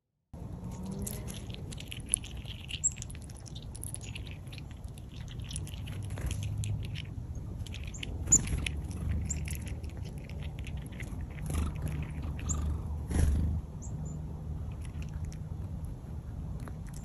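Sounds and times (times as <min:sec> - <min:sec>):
chipmunk crunching seeds: 0:00.4 - 0:17.0.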